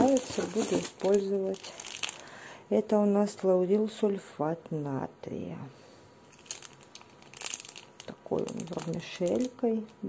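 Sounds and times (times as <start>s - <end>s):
plastic bag crinkling: 0.0s - 2.4s, 6.3s - 10.0s.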